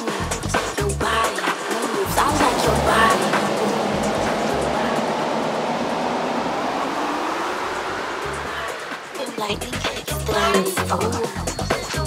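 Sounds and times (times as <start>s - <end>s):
tech house dj mix: 0.0s - 12.0s
downward noise sweep: 1.6s - 10.6s.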